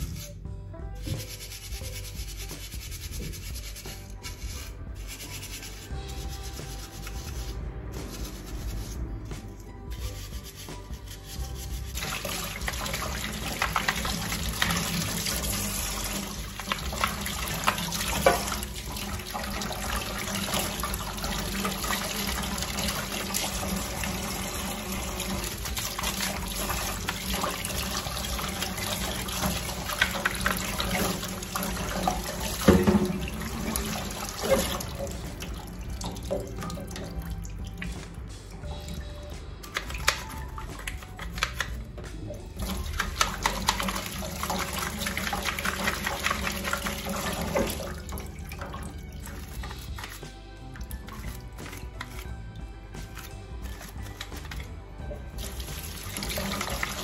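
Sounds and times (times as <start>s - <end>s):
rubbing plastic parts: 1.1s - 18.7s
tap running into metal sink: 12.0s - 38.2s, 39.6s - 50.2s, 53.1s - 57.0s
water splashing: 42.4s - 52.4s, 55.4s - 57.0s.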